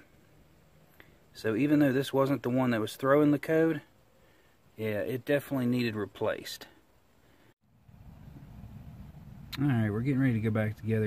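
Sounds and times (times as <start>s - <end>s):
faint low rumble: 6.9s - 11.0s.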